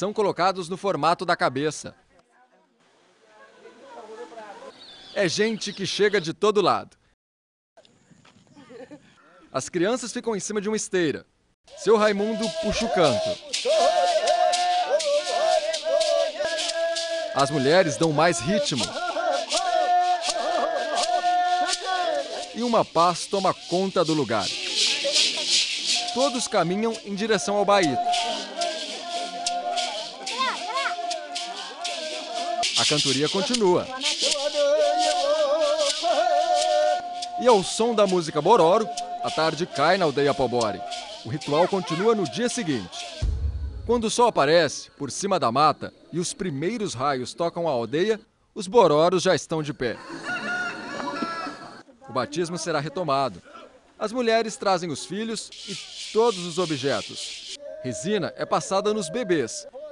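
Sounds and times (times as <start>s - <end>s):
voices chanting together: 12.2s - 22.6s, 23.5s - 44.1s
rattle shaken: 12.4s - 17.6s, 18.8s - 27.2s, 27.9s - 37.3s, 55.5s - 57.6s.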